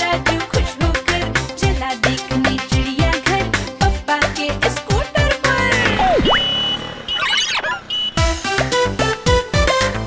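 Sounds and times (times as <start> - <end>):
backing music: 0.0 - 6.9, 7.9 - 10.0
cartoon pitch swoop: 5.8 - 8.0
high steady beep: 5.9 - 8.3
fluttering warbling chirps: 6.0 - 7.9.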